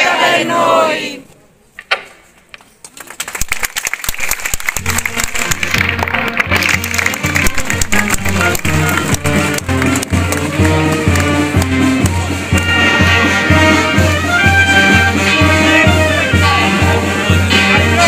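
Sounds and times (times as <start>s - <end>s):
crowd applause: 3.0s - 12.7s
instrumental band music with bass: 4.9s - 18.0s.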